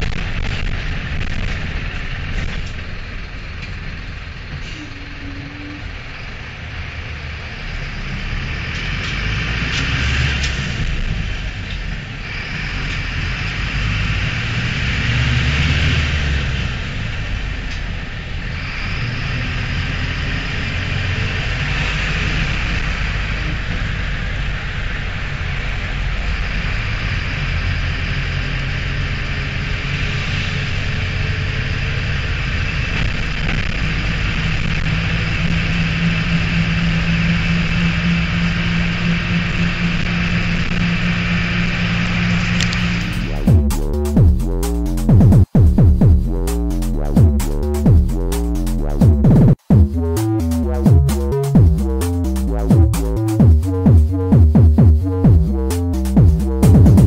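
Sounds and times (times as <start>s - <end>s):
diesel bus engine: 0.0s - 57.0s
road noise: 0.0s - 57.0s.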